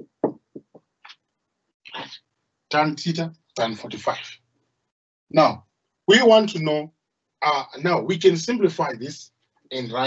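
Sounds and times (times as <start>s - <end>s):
marker tapping on whiteboard: 0.0s - 0.9s.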